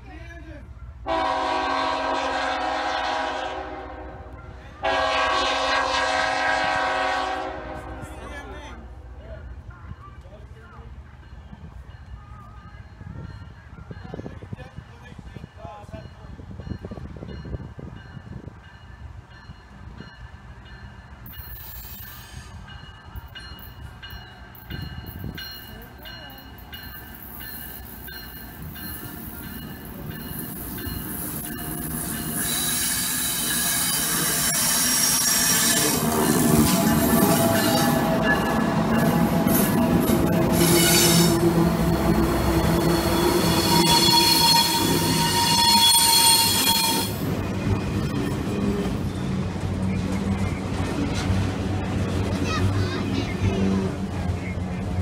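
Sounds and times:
diesel locomotive engine: 0.0s - 55.0s
train horn blasts: 1.0s - 8.4s, 32.5s - 47.3s
wheels roaring on rails: 16.1s - 55.0s.

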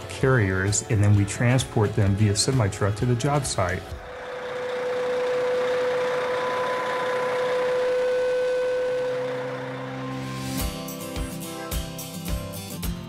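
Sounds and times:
truck engine running: 0.0s - 12.5s
steady whine: 1.9s - 12.0s.

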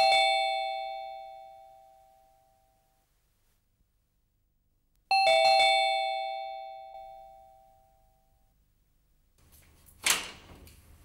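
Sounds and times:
doorbell chime ringing: 0.0s - 2.9s, 5.1s - 8.4s.

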